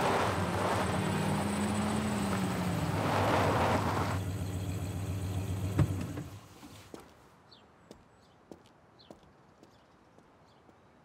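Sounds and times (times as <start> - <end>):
motor vehicle running: 0.0 - 6.4.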